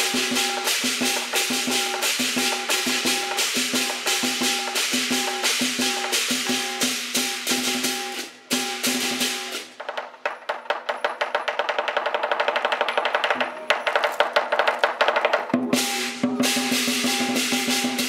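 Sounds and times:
cymbals crashing: 0.0s - 9.8s, 15.6s - 18.0s
big drum beating: 0.0s - 10.0s, 13.3s - 18.0s.

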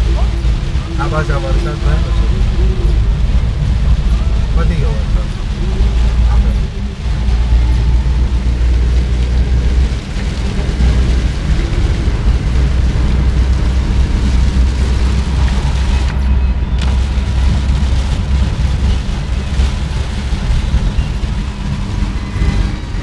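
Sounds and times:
rain on car: 0.0s - 23.0s
road and engine rumble: 0.0s - 23.0s.

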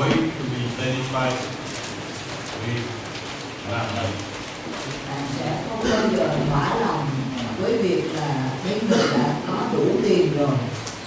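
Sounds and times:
room noise hiss: 0.0s - 11.0s.

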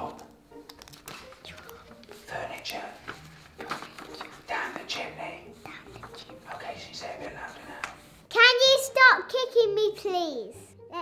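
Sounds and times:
person whispering: 1.4s - 3.1s, 4.0s - 8.0s.

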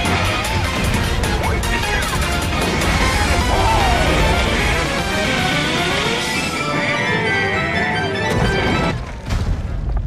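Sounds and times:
cartoon soundtrack music: 0.0s - 9.4s
deep explosion boom with rumbling: 9.0s - 10.0s.

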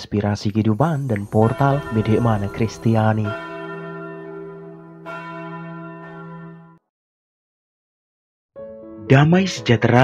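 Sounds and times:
bell ringing: 0.8s - 6.8s.

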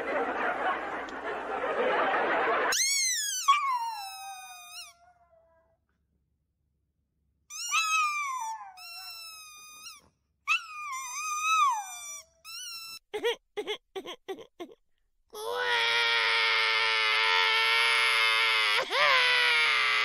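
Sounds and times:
chihuahua whining and howling: 2.8s - 5.6s, 7.5s - 12.0s.

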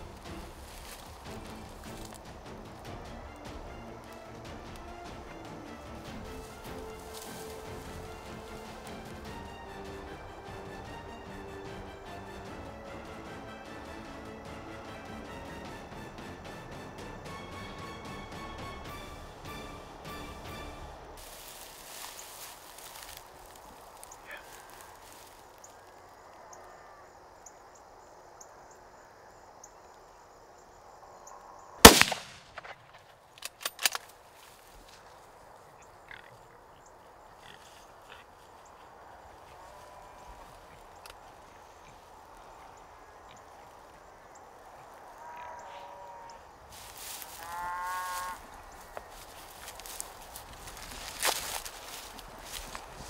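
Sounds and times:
rifle shot: 31.8s - 33.0s
weaker sharp crack: 31.8s - 33.9s.

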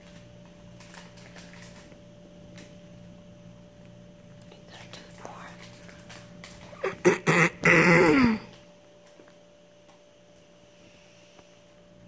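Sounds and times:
short loud vocal sounds: 6.9s - 8.5s.

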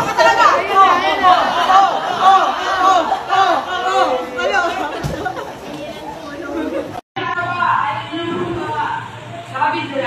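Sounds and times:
group of people chattering: 0.0s - 10.0s.

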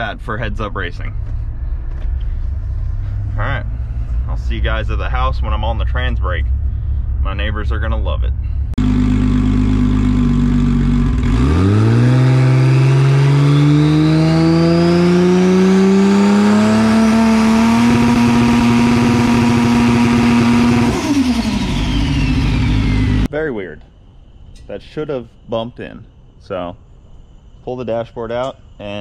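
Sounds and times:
car engine idling and revving: 0.0s - 23.3s.

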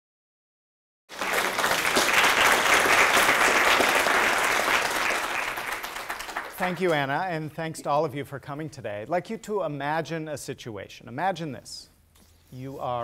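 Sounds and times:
audience applauding: 1.1s - 6.9s.

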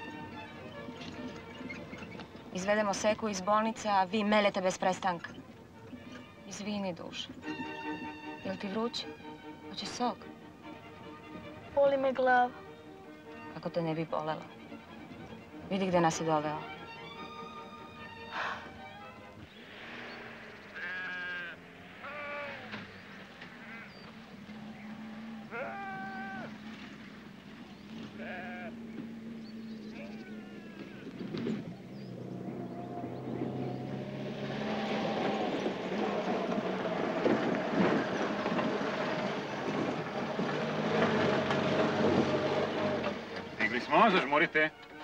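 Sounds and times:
car engine humming: 0.0s - 45.0s
tyres on dirt track: 0.0s - 45.0s
sheep bleating: 20.7s - 22.8s, 23.5s - 26.6s, 28.1s - 28.8s, 29.9s - 31.2s.

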